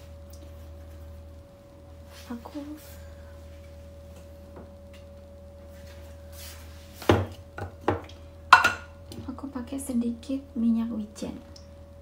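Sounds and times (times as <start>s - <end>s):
low steady hum: 0.0s - 12.0s
kitchen containers knocking and clinking: 7.1s - 8.9s.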